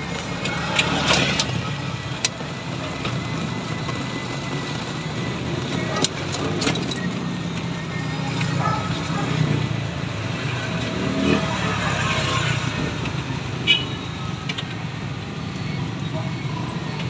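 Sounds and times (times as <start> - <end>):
drive and tyre hum: 0.0 - 17.0.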